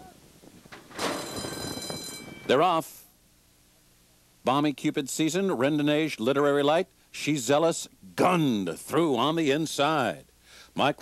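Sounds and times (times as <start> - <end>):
gate doors springing open: 0.7 - 2.5
starting-gate bell ringing: 1.0 - 2.8.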